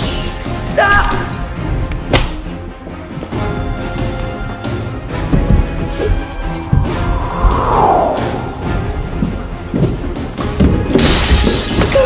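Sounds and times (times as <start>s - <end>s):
glass shattering: 0.0s - 1.4s, 10.9s - 12.0s
background music: 0.0s - 12.0s.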